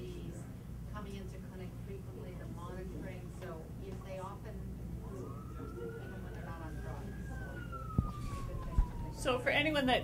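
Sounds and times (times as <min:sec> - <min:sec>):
siren tone gliding down: 0:05.1 - 0:09.6.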